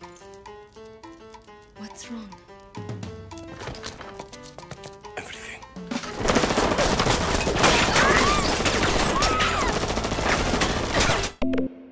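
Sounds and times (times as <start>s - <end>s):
rifles firing rapid volley: 6.1s - 11.4s.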